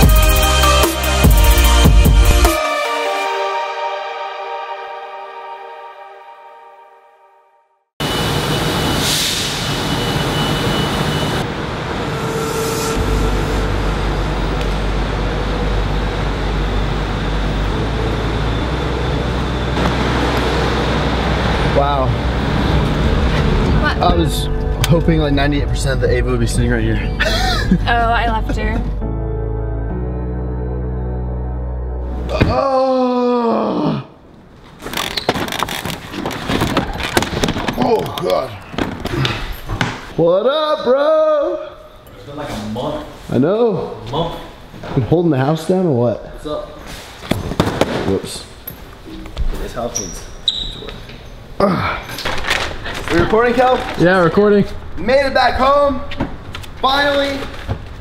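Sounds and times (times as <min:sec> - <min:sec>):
music track: 0:00.0 - 0:07.8, 0:13.0 - 0:32.4
traffic din: 0:08.0 - 0:29.0, 0:50.8 - 0:58.0
low vehicle rumble: 0:11.4 - 0:29.1
suitcase knocking and rattling: 0:35.3 - 0:38.1.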